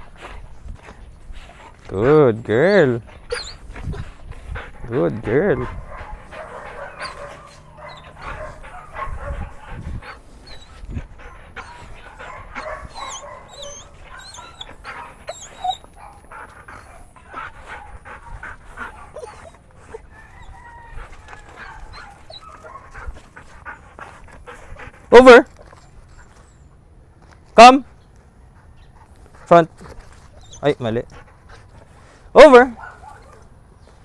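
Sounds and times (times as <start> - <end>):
dog panting: 0.0 - 26.8, 28.4 - 33.4
dog whining: 3.2 - 4.0, 6.4 - 9.7, 10.4 - 22.9.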